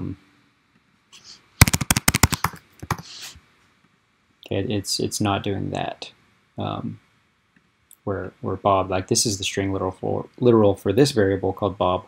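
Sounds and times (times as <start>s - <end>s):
typing on keyboard: 1.6s - 3.1s.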